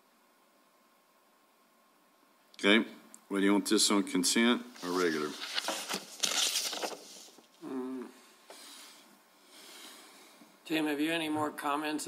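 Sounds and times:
soft rustle: 4.7s - 7.6s.

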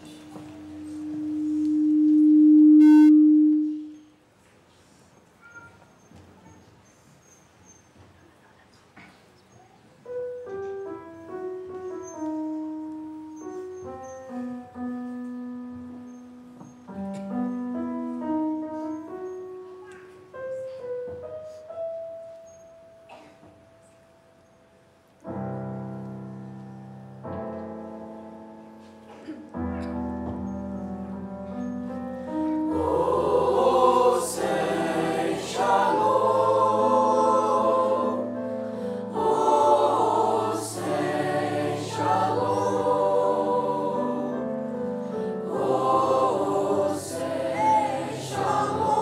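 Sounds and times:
low feedback tone: 0.0s - 4.2s
slow piano playing: 0.0s - 4.2s, 10.0s - 49.0s
faint auditorium noise: 0.0s - 49.0s.

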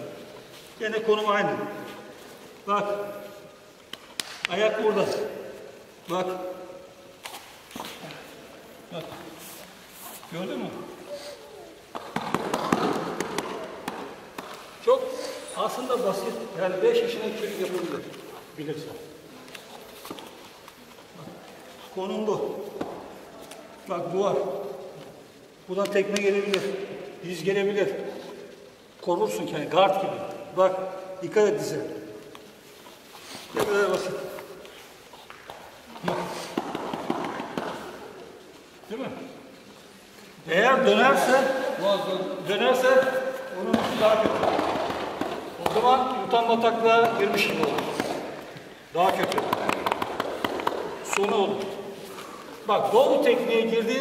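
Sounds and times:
bodies slapping on foam mats: 11.9s - 14.6s, 35.3s - 38.1s, 43.0s - 46.3s, 47.0s - 48.4s, 49.0s - 51.7s
feet and hands tapping on mat: 32.3s - 38.2s, 47.0s - 52.4s.

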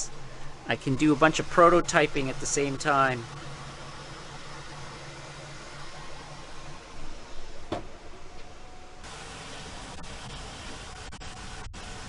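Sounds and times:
cooling fans whirring: 0.0s - 12.0s
uneven motor noise: 0.0s - 12.0s.

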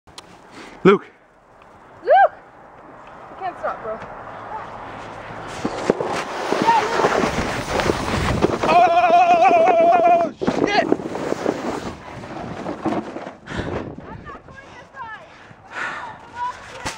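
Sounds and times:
sled scraping on snow: 4.5s - 16.9s
wind on microphone: 5.4s - 15.7s
person yelling: 8.6s - 10.4s
person shouting: 8.7s - 10.4s.

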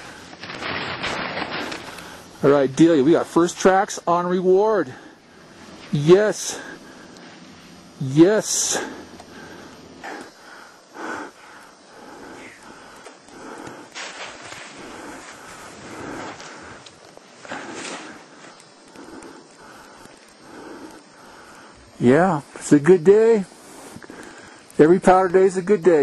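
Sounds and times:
person breathing close: 1.5s - 2.4s, 4.9s - 22.0s, 23.5s - 24.7s.

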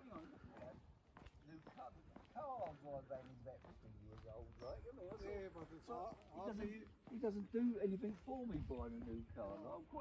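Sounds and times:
footsteps on tarmac: 0.0s - 10.0s
men talking: 0.0s - 10.0s.

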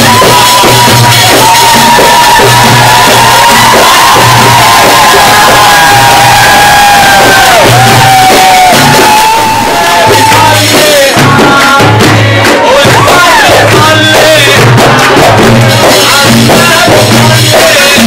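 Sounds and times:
bass drum beating: 0.0s - 18.0s
crowd cheering: 0.0s - 18.0s.

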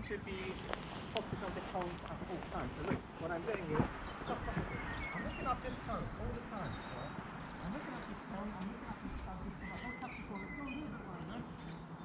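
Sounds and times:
people talking: 0.0s - 11.9s
small birds chirping: 0.0s - 12.0s.

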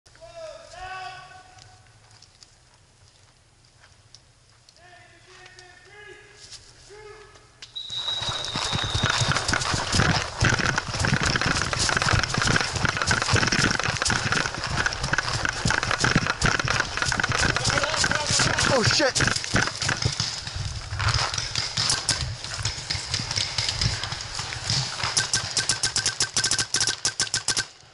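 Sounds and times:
distant voices calling out: 13.8s - 20.1s.

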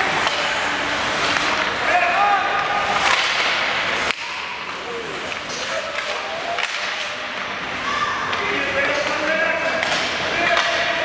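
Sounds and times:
echoing rink noise: 0.0s - 11.0s
hockey sticks and puck cracking: 0.0s - 11.0s
people shouting: 7.7s - 8.6s.

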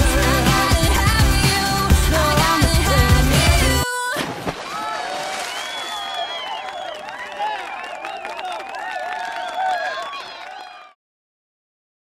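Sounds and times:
splash into swimming pool: 4.1s - 6.4s
people shouting and cheering: 4.7s - 11.0s.

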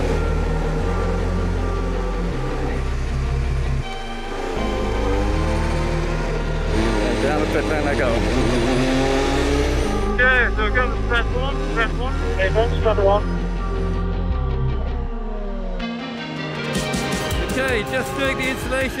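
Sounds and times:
racing car engine at low revs: 0.0s - 19.0s.

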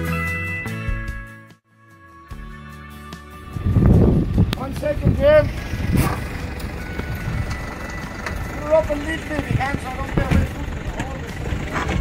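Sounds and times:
engine running low: 3.2s - 12.0s
voices: 4.5s - 12.0s.

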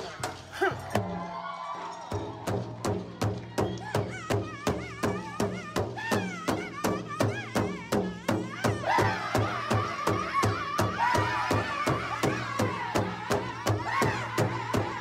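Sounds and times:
drum beaten in fast pulse: 2.4s - 15.0s.

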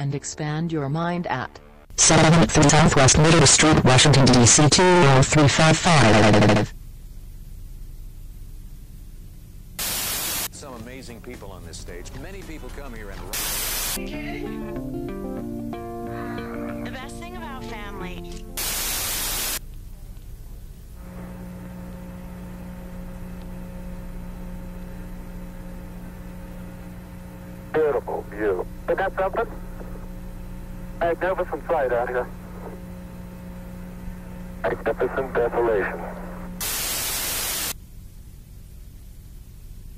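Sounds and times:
tv static hiss: 1.9s - 6.7s, 9.8s - 14.4s, 16.9s - 19.6s, 20.4s - 37.8s
low hum: 16.2s - 39.6s.

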